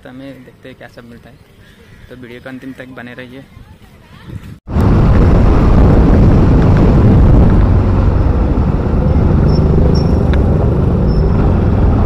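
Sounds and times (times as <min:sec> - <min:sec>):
wind noise on microphone: 0:03.5 - 0:12.0
motorbike engine running: 0:07.4 - 0:12.0.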